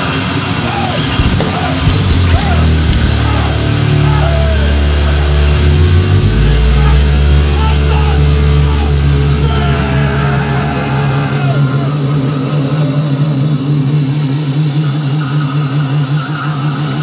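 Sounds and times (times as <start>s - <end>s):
held distorted guitar chord: 0.0s - 17.0s
thrash metal song: 0.0s - 17.0s
wavering low drone: 1.6s - 17.0s.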